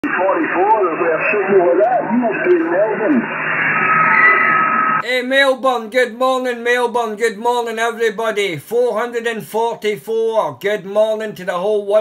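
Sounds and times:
voice over radio speaker: 0.0 - 3.4
radio static hiss: 0.0 - 5.0
steady whistle: 3.7 - 5.0.

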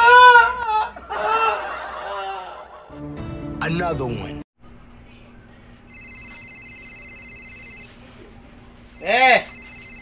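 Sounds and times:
phone ringing: 5.9 - 8.0, 8.9 - 10.0.

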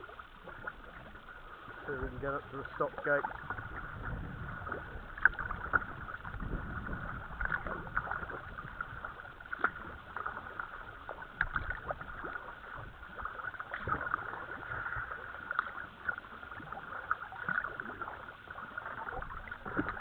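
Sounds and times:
kayak paddles splashing water: 0.0 - 20.0.

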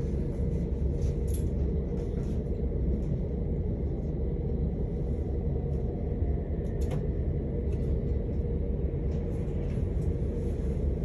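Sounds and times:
train rumbling on track: 0.0 - 11.0.

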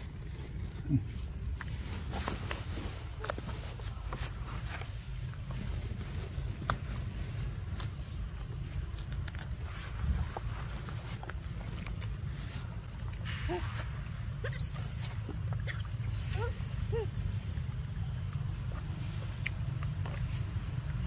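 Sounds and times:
wind rumble on microphone: 3.8 - 14.3.

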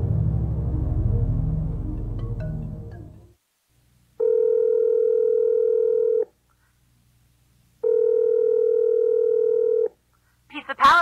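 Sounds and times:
telephone ringing tone: 4.2 - 6.3, 7.8 - 9.9.

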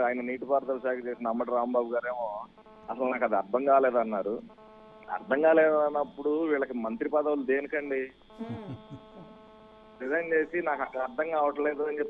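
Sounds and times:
man speaking: 0.0 - 9.0, 10.0 - 12.0
steady electrical hum: 0.0 - 12.0.

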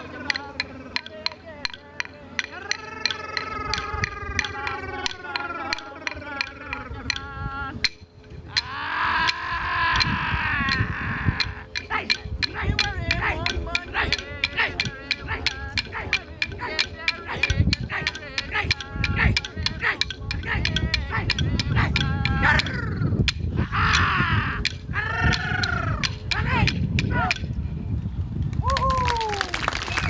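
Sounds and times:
person singing long call: 0.0 - 27.4
clapsticks struck: 11.4 - 27.5.

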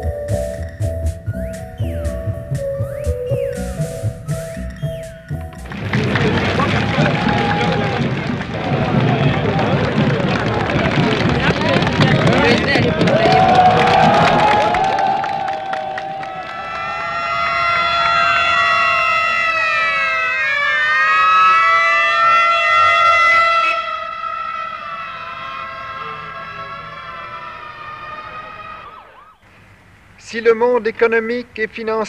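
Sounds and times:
escort sirens: 0.0 - 30.2
crowd noise: 0.0 - 31.3.

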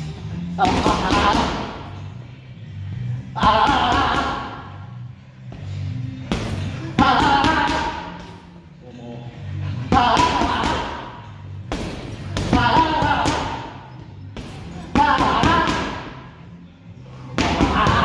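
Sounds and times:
background music: 0.0 - 18.0.

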